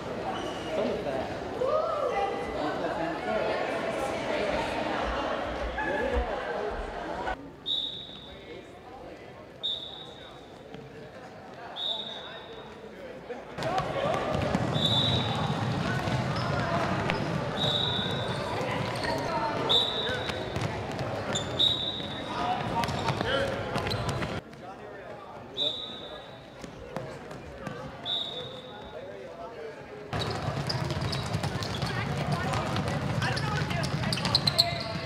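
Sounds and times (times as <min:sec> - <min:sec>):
sneakers squeaking on gym floor: 0:00.3 - 0:01.0, 0:13.6 - 0:24.4, 0:30.1 - 0:35.0.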